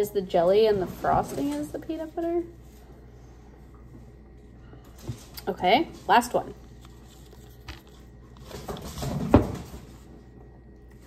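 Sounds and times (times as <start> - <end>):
package rustling: 6.6 - 9.2.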